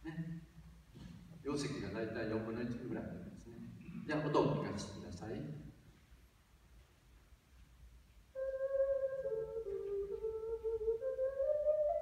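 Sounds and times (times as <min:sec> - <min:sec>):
ocarina playing held notes: 0:08.3 - 0:12.0.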